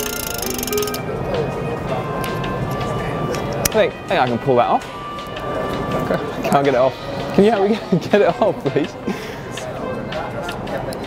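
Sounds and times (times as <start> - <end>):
bicycle hub ratchet clicking: 0.0 - 1.0
busy hall din: 0.0 - 11.0.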